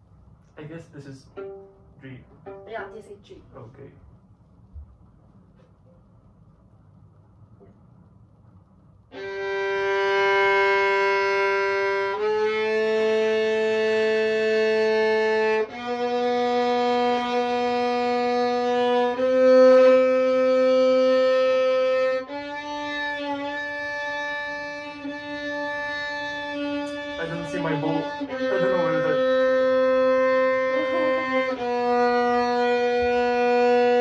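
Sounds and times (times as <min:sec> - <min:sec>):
violin long bowed notes: 0:01.2 - 0:03.0, 0:09.1 - 0:34.0.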